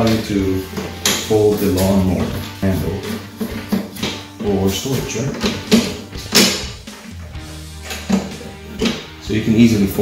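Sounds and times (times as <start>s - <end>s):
guitar background music: 0.0s - 10.0s.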